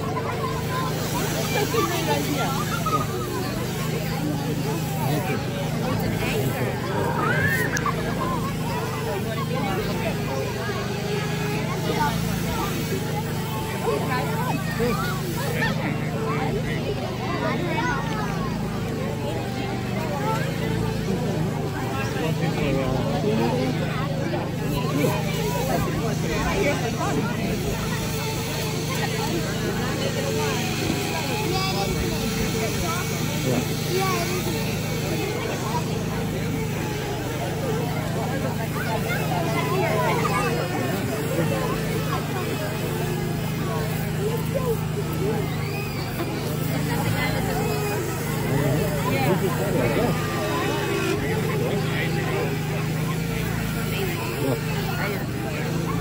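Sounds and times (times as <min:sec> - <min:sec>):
chainsaw cutting ice: 0:00.0 - 0:56.0
crowd chatter: 0:00.0 - 0:56.0.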